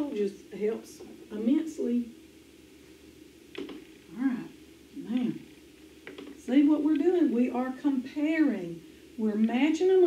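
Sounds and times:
woman speaking: 0:00.0 - 0:02.2, 0:04.1 - 0:05.5, 0:06.4 - 0:10.0
faint steady hum: 0:00.0 - 0:10.0.

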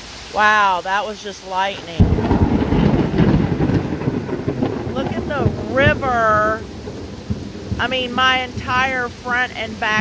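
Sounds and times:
heavy rain: 0:00.0 - 0:10.0
thunder rumbling: 0:00.3 - 0:10.0.

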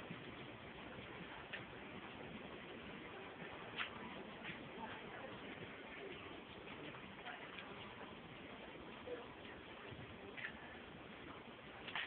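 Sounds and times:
steady low background noise: 0:00.0 - 0:12.0.

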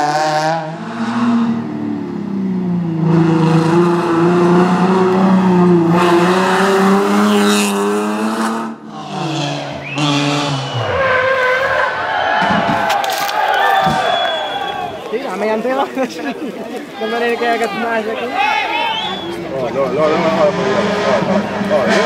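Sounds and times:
rally car engines revving: 0:00.0 - 0:12.8, 0:18.9 - 0:22.0.

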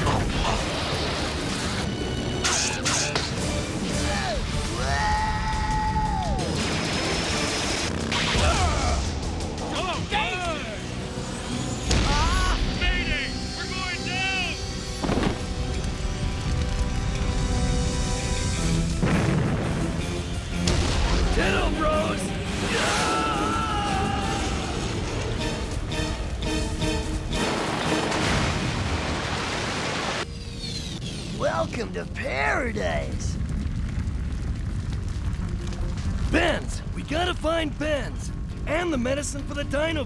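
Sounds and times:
cartoon action music: 0:00.0 - 0:11.0, 0:18.6 - 0:28.7
booms and crashing effects: 0:03.2 - 0:10.2, 0:11.7 - 0:13.5, 0:14.6 - 0:25.9, 0:27.3 - 0:30.2, 0:32.8 - 0:37.3.

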